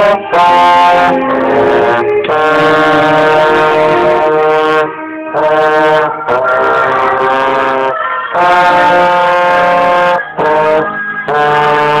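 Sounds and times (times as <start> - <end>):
concert band sustained chord: 0.0 - 12.0
trombone holding long note: 0.0 - 12.0.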